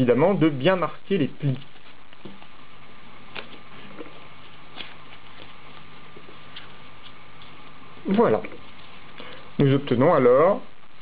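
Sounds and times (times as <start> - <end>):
low background hum: 0.0 - 11.0
paper being folded: 1.1 - 9.8.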